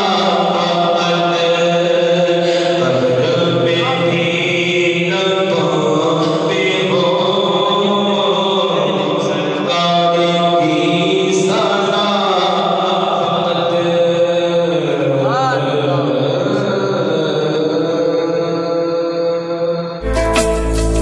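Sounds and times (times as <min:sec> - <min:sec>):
man chanting into a microphone: 0:00.0 - 0:20.0.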